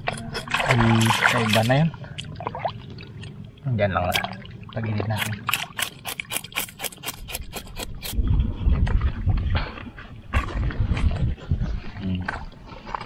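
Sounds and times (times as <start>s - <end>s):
knife scraping fish scales: 0.0s - 0.7s, 5.2s - 8.2s
low rumbling: 8.1s - 12.8s.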